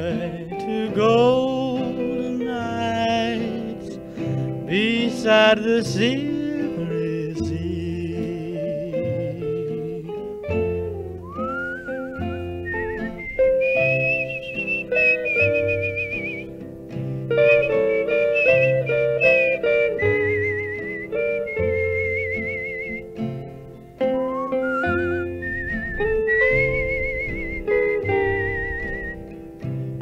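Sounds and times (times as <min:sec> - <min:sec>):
acoustic rhythm guitar: 0:00.0 - 0:30.0
electric lead guitar: 0:00.0 - 0:30.0
plucked upright bass: 0:00.0 - 0:30.0
whistled melody with vibrato: 0:05.9 - 0:30.0.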